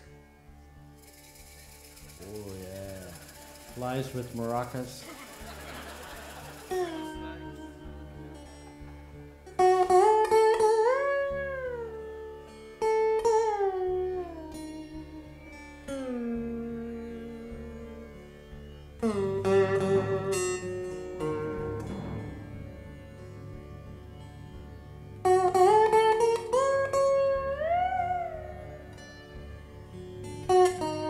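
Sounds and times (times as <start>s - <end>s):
lap slide guitar note: 6.7s - 18.4s, 19.0s - 31.0s.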